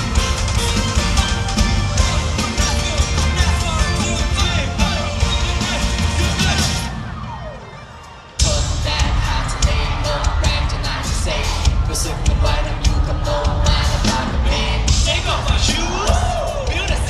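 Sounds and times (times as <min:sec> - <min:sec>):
pop dance music with singing: 0:00.0 - 0:07.3, 0:08.3 - 0:17.0.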